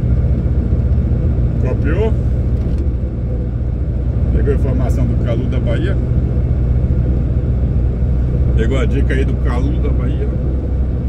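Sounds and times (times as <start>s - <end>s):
truck engine and tyre drone: 0.0s - 11.0s.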